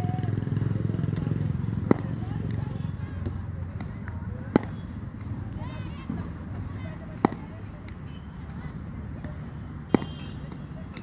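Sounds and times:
cricket bat striking ball: 1.8s - 2.7s, 3.7s - 5.0s, 7.2s - 8.0s, 9.2s - 11.0s.

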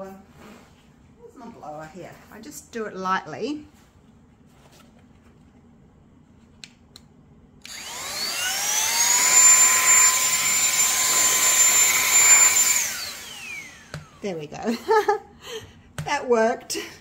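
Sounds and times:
electric air duster whine: 7.6s - 14.2s.

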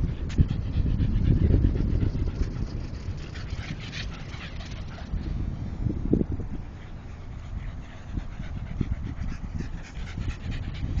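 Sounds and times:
dog panting quickly: 0.0s - 5.3s, 6.6s - 11.0s.

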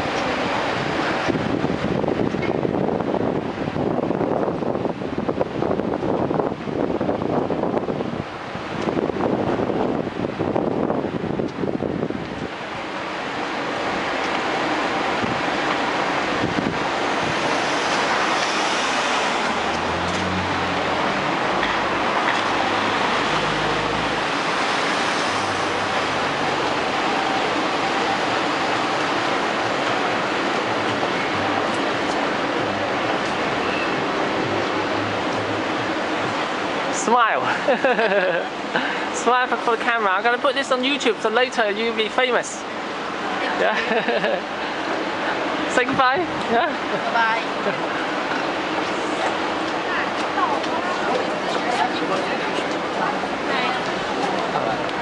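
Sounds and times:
wind buffeting microphone: 0.0s - 36.9s
street noise: 0.0s - 55.0s.

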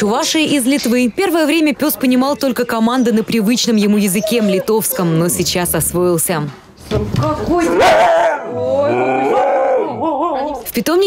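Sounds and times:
husky howling: 7.8s - 10.2s.

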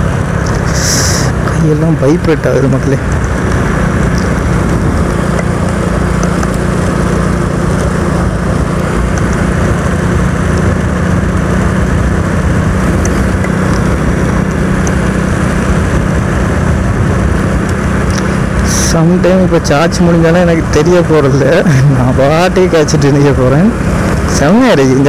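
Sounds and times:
motorcycle engine cruising: 0.0s - 25.0s
wind and road noise: 0.0s - 25.0s.

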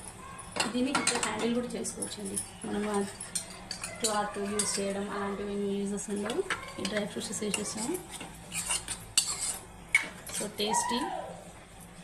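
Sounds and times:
spoon stirring thick pudding: 2.8s - 5.1s, 6.2s - 10.6s.

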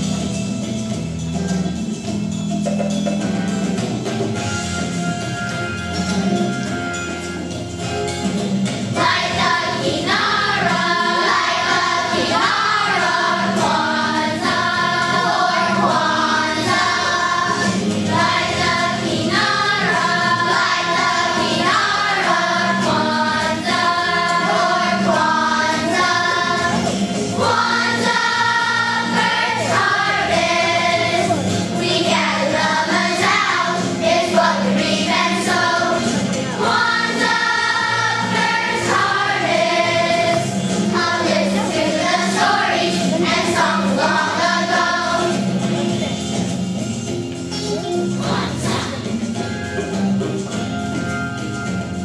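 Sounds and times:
children's choir singing: 8.9s - 46.2s, 48.2s - 49.4s.

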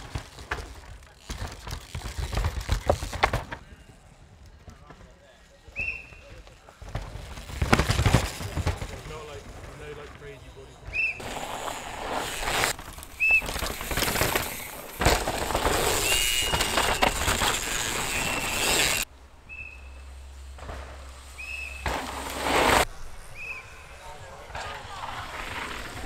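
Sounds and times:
tyres crunching and skidding: 0.0s - 3.8s, 4.4s - 19.1s, 20.0s - 22.9s
bike rattling: 0.0s - 26.0s.

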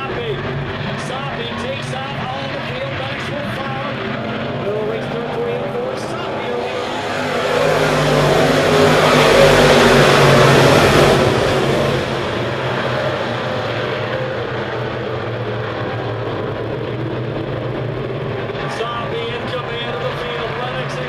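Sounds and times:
race car engines roaring: 0.0s - 21.0s.

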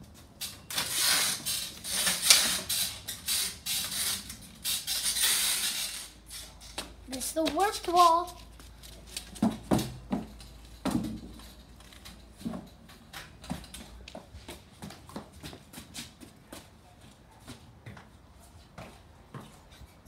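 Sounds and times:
child running in sandals: 6.2s - 10.8s, 13.0s - 20.0s.

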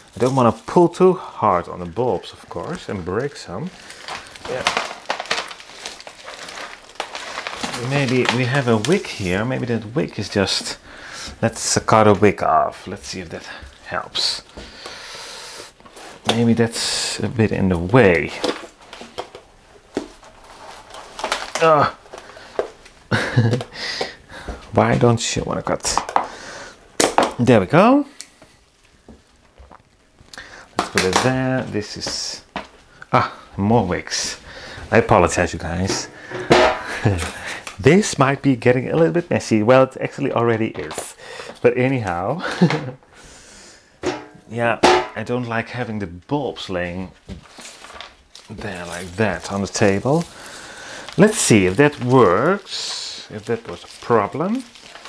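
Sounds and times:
plastic pot crackling: 0.0s - 10.8s, 15.8s - 23.7s, 29.3s - 43.0s, 44.5s - 55.0s
pebbles shifting: 0.0s - 15.0s, 15.8s - 23.7s, 28.9s - 42.9s, 44.5s - 55.0s.

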